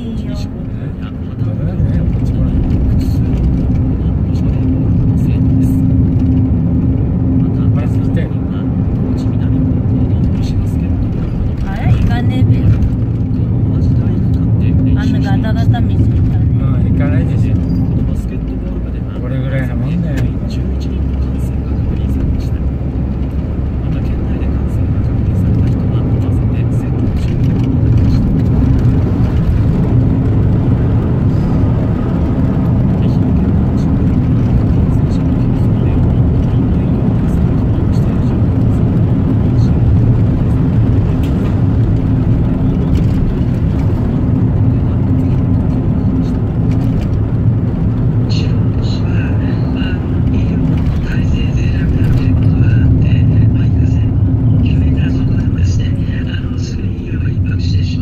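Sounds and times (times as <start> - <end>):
car engine drone: 0.0 - 58.0
road noise: 0.0 - 58.0.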